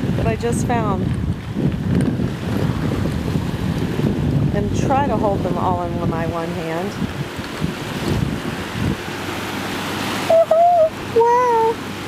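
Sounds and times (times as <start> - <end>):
wind buffeting microphone: 0.0 - 12.0
small waves lapping shore: 2.2 - 12.0.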